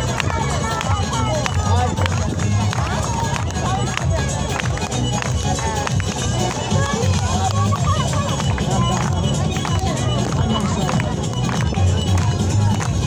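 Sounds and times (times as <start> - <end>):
dance music with drums and bass: 0.0 - 13.0
people's voices: 0.0 - 13.0.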